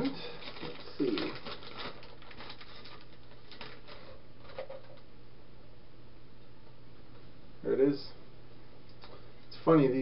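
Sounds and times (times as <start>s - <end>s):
plastic packaging crackling: 0.0s - 5.0s
low steady hum: 0.0s - 10.0s.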